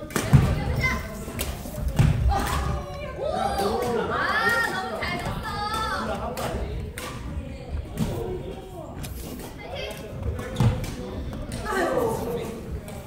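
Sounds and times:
players' voices: 0.0s - 13.0s.

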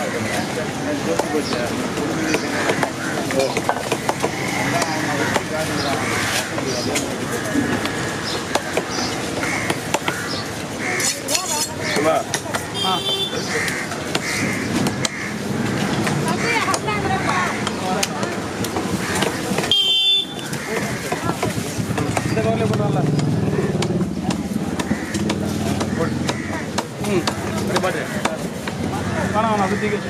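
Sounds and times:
crows cawing: 0.0s - 22.7s, 23.5s - 30.0s
busy market background noise: 0.0s - 30.0s
knife chopping on wooden block: 20.4s - 28.9s.

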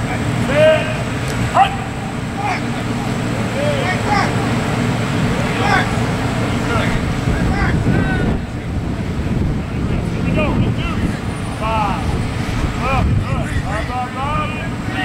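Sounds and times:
people shouting calls: 0.0s - 8.8s, 10.0s - 15.0s
steady low rumble: 0.0s - 15.0s.

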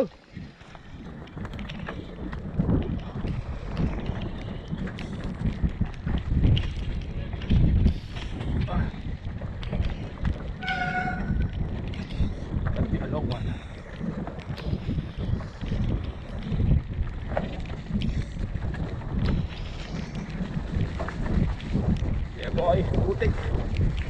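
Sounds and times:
bike rolling over dirt trail: 0.0s - 24.0s
wind buffeting microphone: 0.0s - 24.0s.

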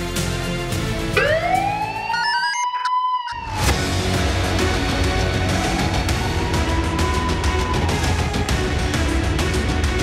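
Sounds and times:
theme music: 0.0s - 10.0s
rising siren-like tone: 1.2s - 3.8s.

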